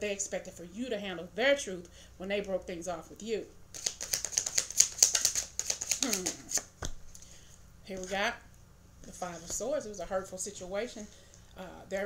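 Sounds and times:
cards being shuffled: 3.7 - 7.2.

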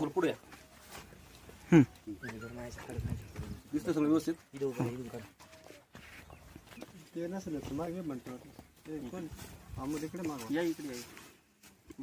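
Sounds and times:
men talking quietly: 0.0 - 12.0.

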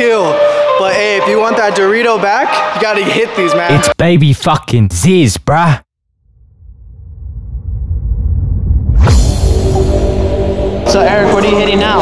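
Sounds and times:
loud electronic music: 0.0 - 4.0, 9.5 - 12.0
deep rumble: 6.1 - 12.0.

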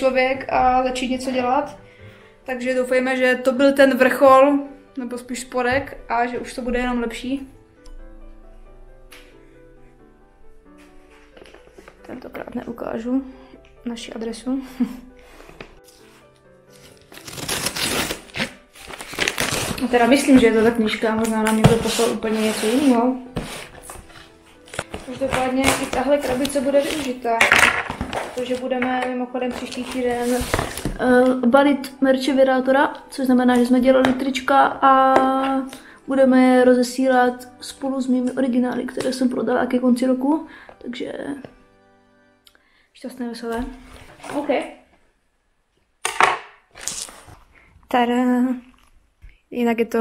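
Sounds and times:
cardboard and paper packaging handled: 15.8 - 28.8, 29.4 - 31.0, 43.8 - 44.7, 46.8 - 47.5.

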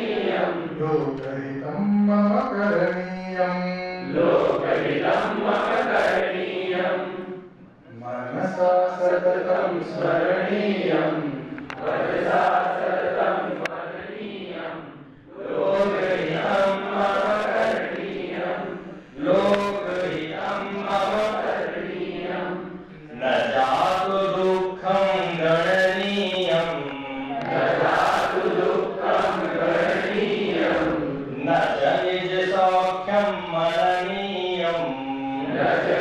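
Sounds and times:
man chanting into a microphone: 0.7 - 5.9, 7.9 - 10.6, 15.7 - 17.9, 19.2 - 21.7, 23.0 - 28.3, 29.2 - 36.0.

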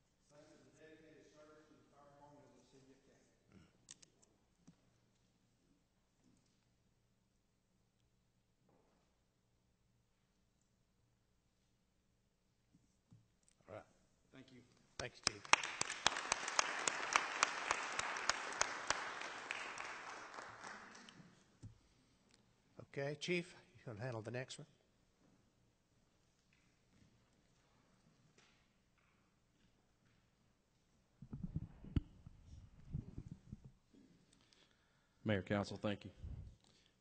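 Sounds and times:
audience applauding: 15.0 - 21.4
sharp claps close by: 15.0 - 21.4.

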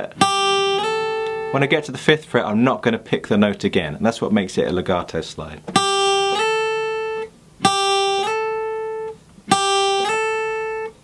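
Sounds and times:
acoustic guitar slide notes: 0.0 - 2.7, 5.7 - 11.0.

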